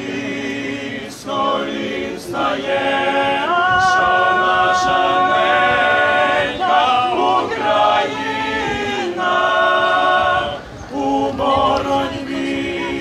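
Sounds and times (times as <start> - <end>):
male vocal group singing a cappella: 0.0 - 13.0.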